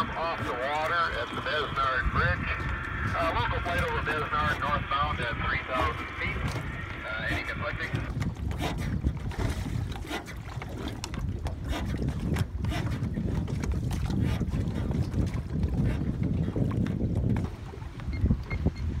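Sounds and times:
water slapping against boat: 0.0 - 19.0
wind buffeting microphone: 0.0 - 19.0.

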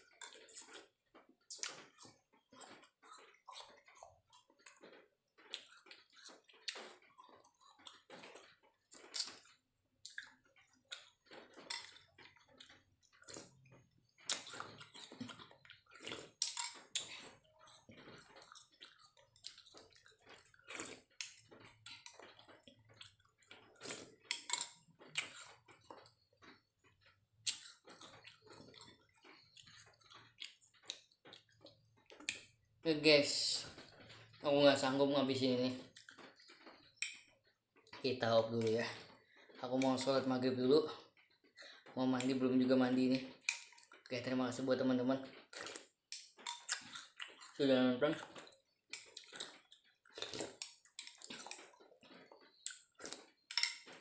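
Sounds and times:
chewing: 0.0 - 54.0
slurping: 0.1 - 26.7, 45.4 - 53.9.

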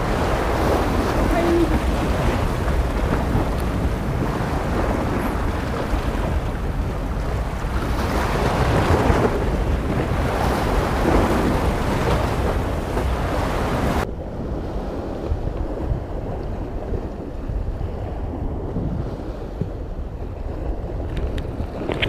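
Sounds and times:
sea waves on rocky shore: 0.0 - 22.0
wind buffeting microphone: 0.0 - 22.0.

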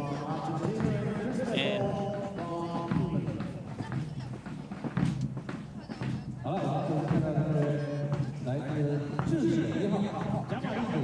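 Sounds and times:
indistinct speech: 0.0 - 4.7.

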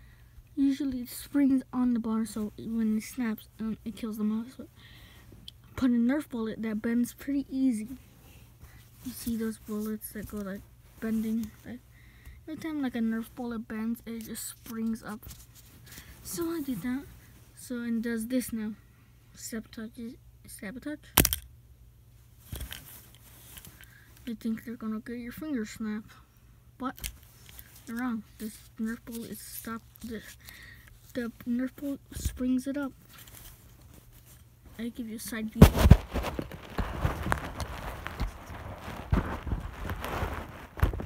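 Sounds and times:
phone handling rustle: 21.2 - 21.4, 22.4 - 24.3, 26.9 - 31.3, 33.0 - 34.6, 35.6 - 41.0
mouse trap clicks clattering: 21.2 - 21.5.

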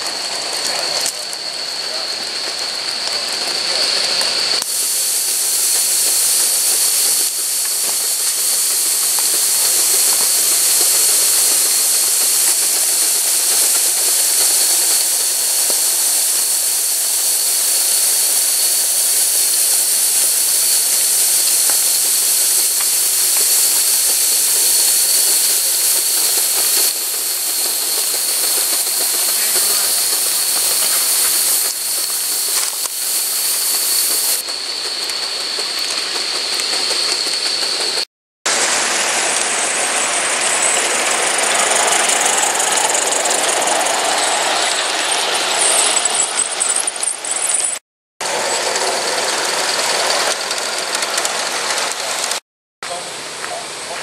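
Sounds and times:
thin steady high tone: 0.0 - 36.0
steam hissing: 0.0 - 54.0.

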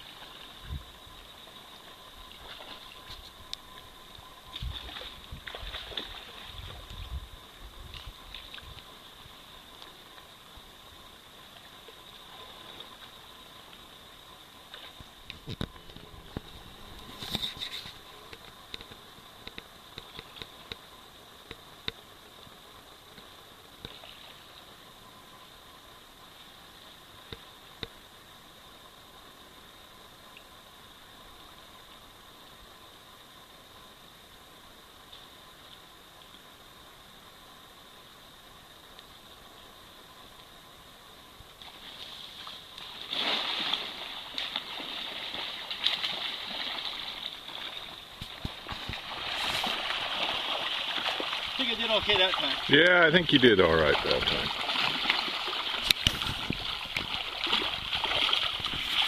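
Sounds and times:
creek water rushing: 41.6 - 59.0.

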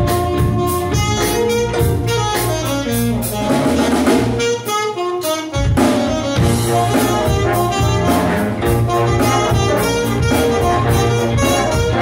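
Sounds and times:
big band playing funky jazz: 0.0 - 12.0
saxophone solo: 0.0 - 12.0.

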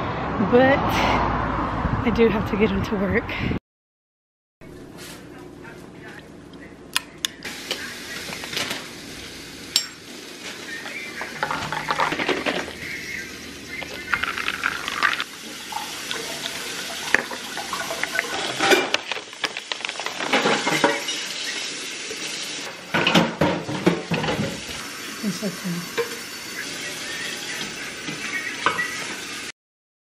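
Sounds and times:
spoon and ice clinking glass: 9.8 - 10.0
liquid pouring: 13.8 - 20.4.

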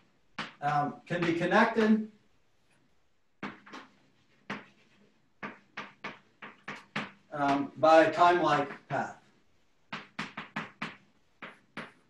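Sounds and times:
chalk writing on blackboard: 3.4 - 7.8, 9.9 - 12.0.

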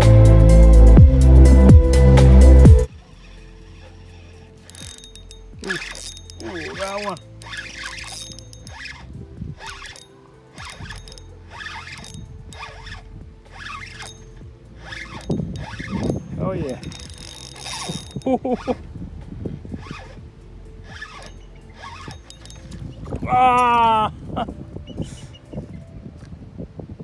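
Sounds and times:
fishing reel cranking: 2.8 - 23.8.

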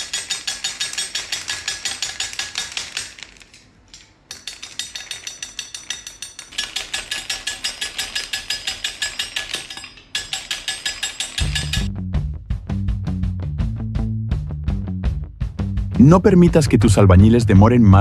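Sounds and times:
blade chopping hard candy: 0.0 - 3.4
music with deep bass line: 11.8 - 18.0.

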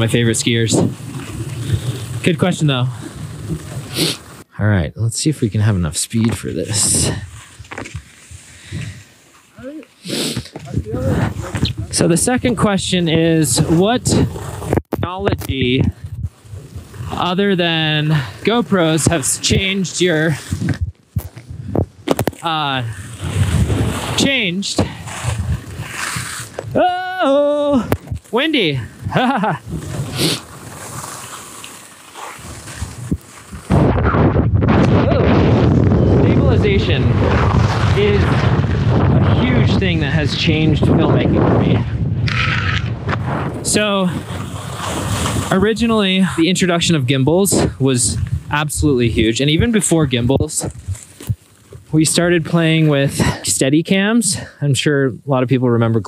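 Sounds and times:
skis scraping on snow: 0.0 - 4.5, 6.0 - 14.8, 15.6 - 21.4, 22.4 - 26.9, 28.1 - 34.0, 35.4 - 53.2
wind buffeting microphone: 10.6 - 26.8, 27.8 - 30.5, 32.4 - 52.0
low rumbles: 32.7 - 53.4.

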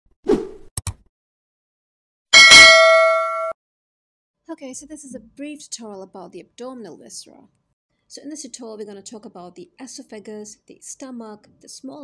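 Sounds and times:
bright notification bell ringing: 2.4 - 3.5.

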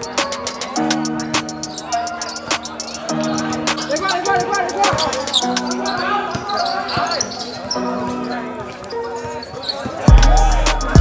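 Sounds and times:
music track with heavy bass: 10.1 - 11.0.

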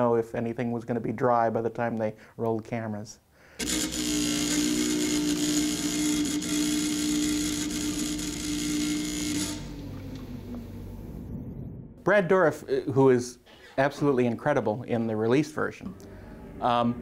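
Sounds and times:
chart recorder mechanical whir: 3.6 - 11.0
low hum: 3.6 - 12.7.

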